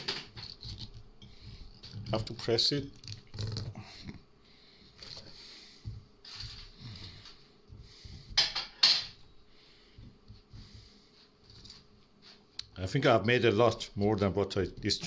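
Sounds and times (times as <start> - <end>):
vegetables rustling in glass jar: 0.0 - 3.6.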